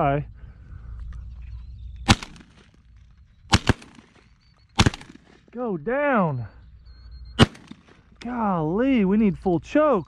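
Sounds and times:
shotgun blasts: 2.1s - 2.8s, 3.5s - 4.2s, 4.8s - 5.5s, 7.4s - 8.1s.

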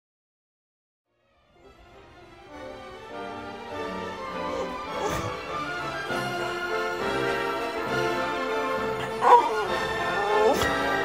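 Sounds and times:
background music: 1.1s - 11.0s
dog yelping: 4.5s - 5.5s, 9.0s - 11.0s.

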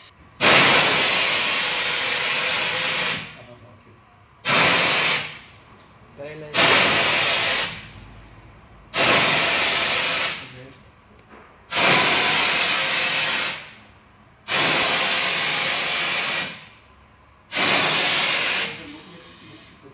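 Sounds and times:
gas jet hissing: 0.4s - 3.4s, 4.4s - 5.4s, 6.6s - 7.8s, 9.0s - 10.5s, 11.7s - 13.8s, 14.5s - 16.6s, 17.5s - 19.8s.

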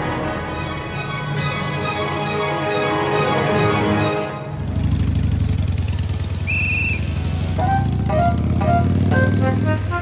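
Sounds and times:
light melody: 7.5s - 10.0s.

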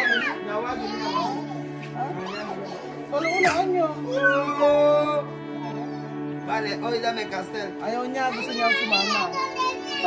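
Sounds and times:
child crying: 0.0s - 6.2s, 8.3s - 10.0s
background music: 0.0s - 10.0s.

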